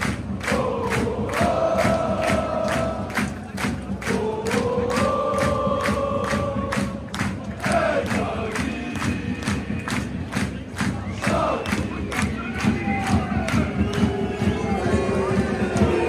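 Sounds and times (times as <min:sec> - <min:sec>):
crowd chanting and shouting: 0:00.0 - 0:16.0
rhythmic hand-clapping: 0:00.0 - 0:16.0.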